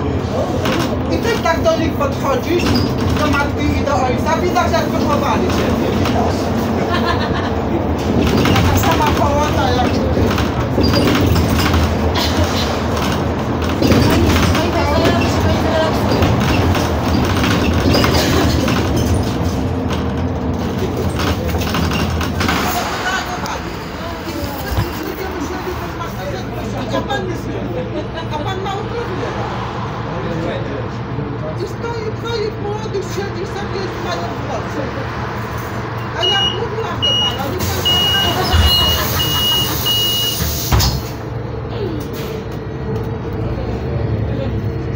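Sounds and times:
bus engine rumbling: 0:00.0 - 0:44.9
indistinct voices: 0:00.0 - 0:44.9
bus door warning beeps: 0:36.0 - 0:41.1.

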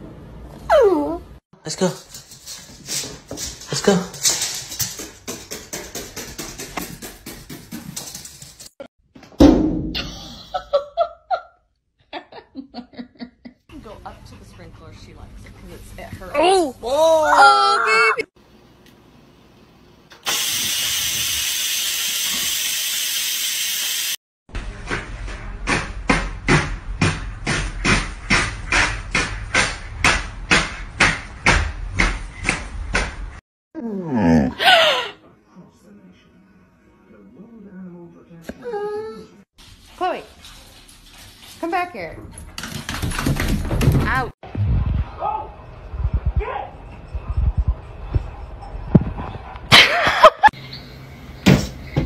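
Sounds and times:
steam hissing from rice cooker: 0:20.2 - 0:24.2.

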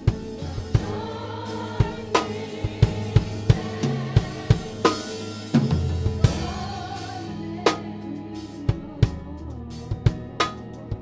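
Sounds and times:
drum kit strikes: 0:00.0 - 0:10.9
choir singing gospel: 0:00.0 - 0:11.0
keyboard and bass notes: 0:00.0 - 0:11.0.

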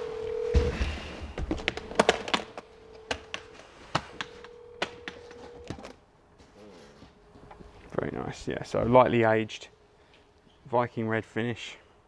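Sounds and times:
steady hum-like tone: 0:00.0 - 0:12.0.

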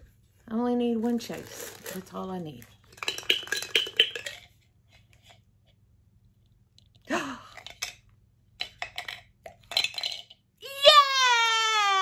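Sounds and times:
plastic wrapping crinkling: 0:01.0 - 0:03.9.

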